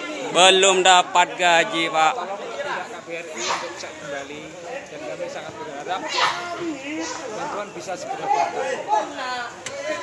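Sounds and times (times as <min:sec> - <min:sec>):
crowd talking: 0:00.0 - 0:10.0
man speaking: 0:00.3 - 0:02.2.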